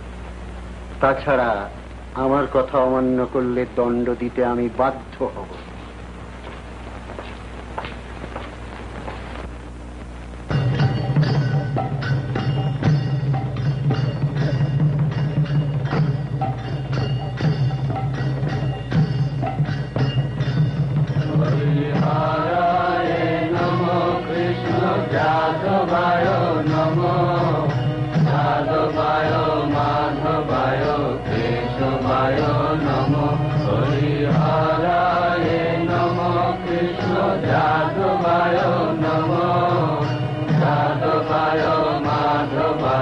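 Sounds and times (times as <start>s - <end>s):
musical accompaniment: 10.4s - 43.0s
devotional chanting: 21.0s - 43.0s.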